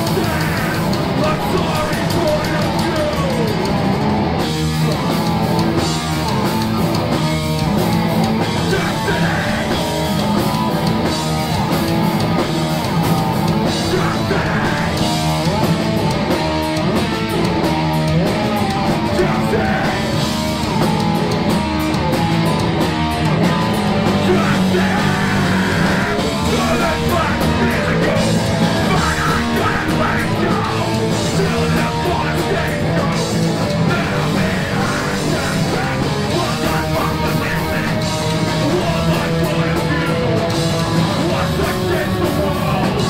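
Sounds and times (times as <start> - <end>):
drum kit: 0.0 - 43.0
electric guitars: 0.0 - 43.0.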